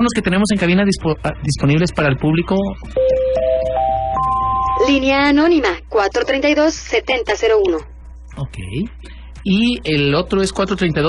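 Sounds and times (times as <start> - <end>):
four-note electronic chime: 3.0 - 5.1.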